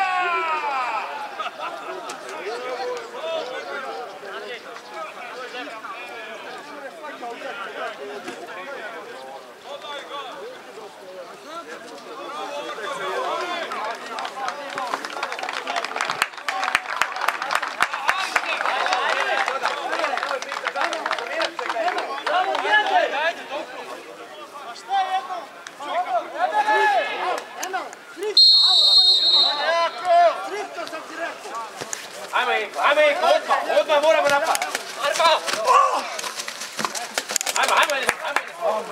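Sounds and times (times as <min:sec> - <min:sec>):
people shouting: 0:00.0 - 0:01.4, 0:28.3 - 0:30.6
referee's whistle: 0:28.4 - 0:30.1.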